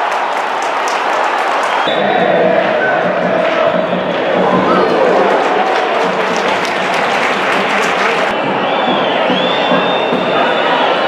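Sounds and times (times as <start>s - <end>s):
crowd clapping and cheering: 0.0s - 11.0s
stadium crowd din: 0.0s - 11.0s.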